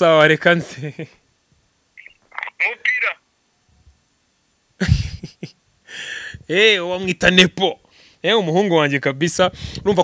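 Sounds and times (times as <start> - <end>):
voice over phone speaker: 2.0 - 3.2.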